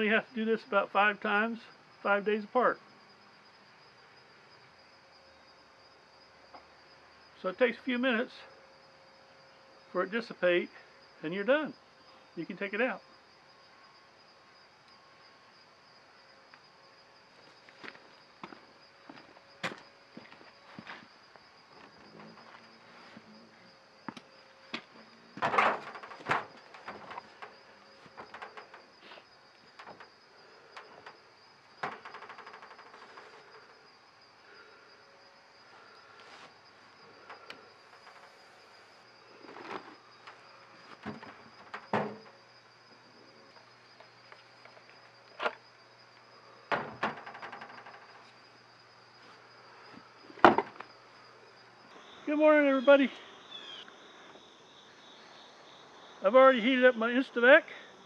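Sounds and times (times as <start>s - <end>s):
insect chorus: 0.0s - 58.0s.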